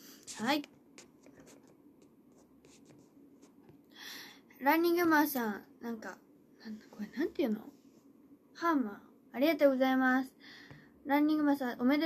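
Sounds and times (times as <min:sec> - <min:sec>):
light scratching and tapping: 0:00.2 - 0:03.8.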